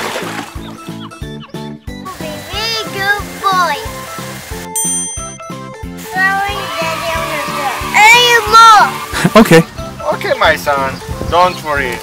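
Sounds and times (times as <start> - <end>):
background music with bass line: 0.0 - 12.0
child speaking: 2.1 - 3.9, 6.1 - 9.0.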